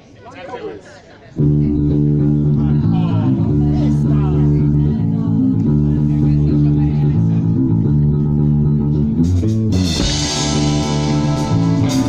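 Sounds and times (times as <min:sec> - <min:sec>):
electric bass and guitar chords: 0:01.4 - 0:12.0.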